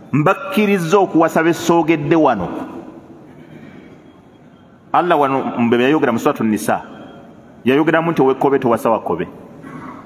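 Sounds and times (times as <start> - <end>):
man's amplified voice: 0.0 - 3.1, 4.9 - 9.6.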